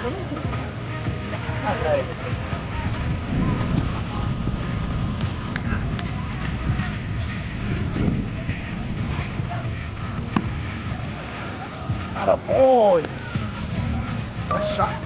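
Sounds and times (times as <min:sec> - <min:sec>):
faint background voices: 0:00.0 - 0:15.0
wind noise on microphone: 0:00.0 - 0:15.0.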